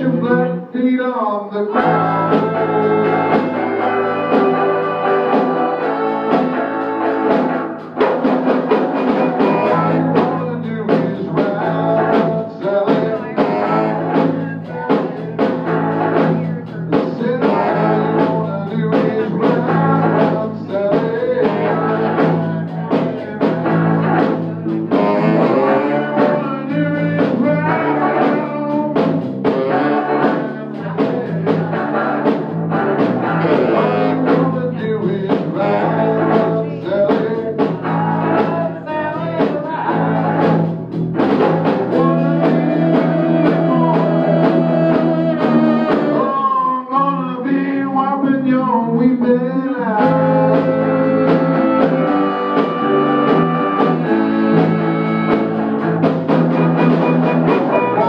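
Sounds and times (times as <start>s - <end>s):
live rock band playing: 0.0s - 58.0s
drum strikes: 1.8s - 46.4s, 49.9s - 58.0s.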